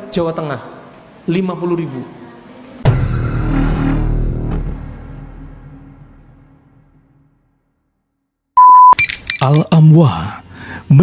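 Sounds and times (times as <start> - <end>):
short electronic beep: 8.6 - 9.4.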